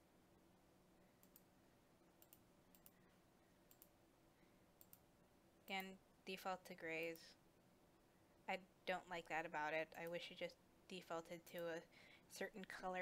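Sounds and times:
low room hum: 0.0 - 13.0
faint mouse clicks: 1.2 - 1.5, 2.2 - 4.0, 4.8 - 5.1.

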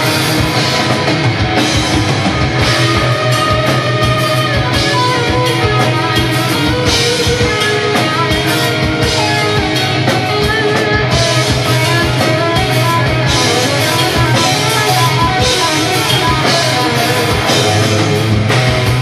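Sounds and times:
distorted electric guitars: 0.0 - 19.0
drum kit: 0.0 - 19.0.

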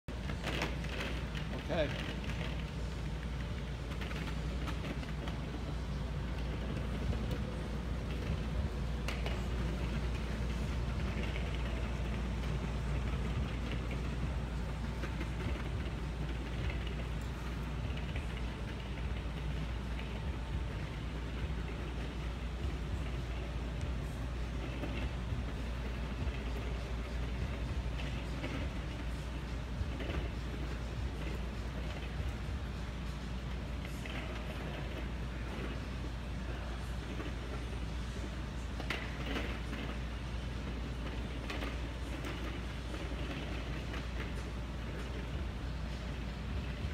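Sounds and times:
low rumble of room noise: 0.0 - 46.9.

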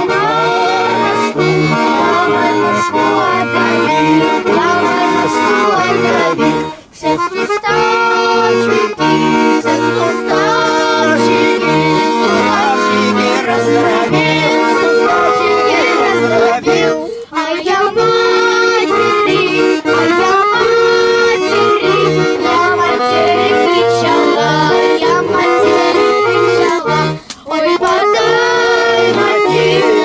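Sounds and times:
button accordion playing a tune: 0.0 - 30.0
voices singing along: 0.0 - 30.0.

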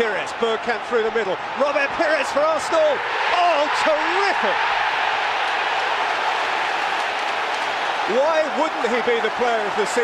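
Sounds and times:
stadium crowd cheering and applauding: 0.0 - 10.0.

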